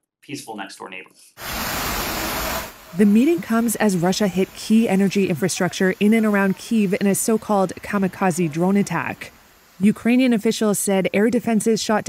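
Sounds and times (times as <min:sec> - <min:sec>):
fire hose water spraying: 0:01.4 - 0:12.0.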